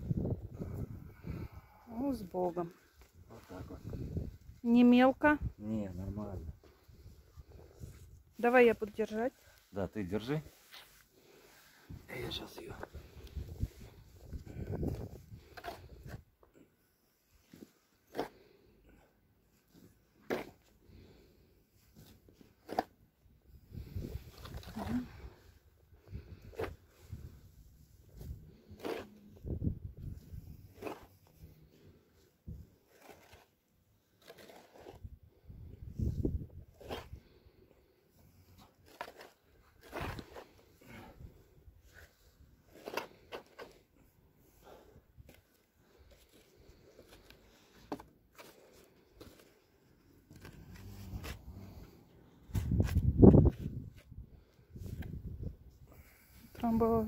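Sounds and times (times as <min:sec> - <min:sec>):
shovel scraping soil: 0:17.5 - 0:18.5, 0:19.8 - 0:20.7, 0:22.0 - 0:23.0, 0:26.4 - 0:27.3, 0:28.1 - 0:29.4, 0:30.2 - 0:31.5, 0:32.5 - 0:35.2, 0:36.7 - 0:37.4, 0:38.6 - 0:44.0, 0:50.3 - 0:53.9.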